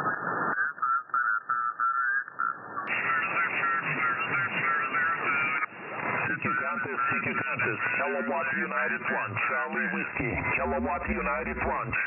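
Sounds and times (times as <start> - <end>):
thin narrow-band radio voice: 0.6 - 12.0.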